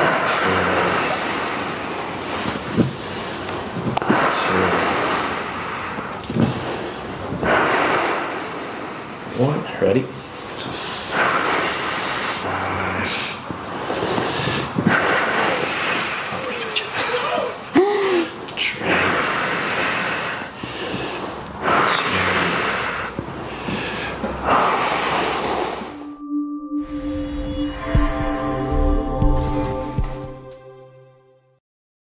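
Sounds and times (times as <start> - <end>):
woman breathing hard: 13.6 - 18.4, 23.0 - 26.0
woman whimpering: 16.4 - 18.3.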